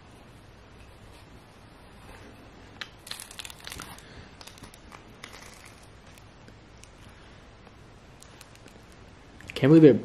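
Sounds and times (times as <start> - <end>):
plastic wrapper crinkling: 2.9 - 7.0.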